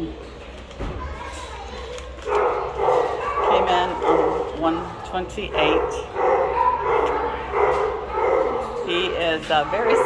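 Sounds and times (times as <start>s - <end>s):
dogs barking and yipping: 2.2s - 10.0s.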